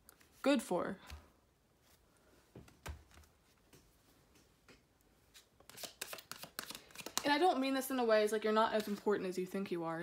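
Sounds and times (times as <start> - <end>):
cards being shuffled: 5.3 - 7.4, 8.8 - 9.1.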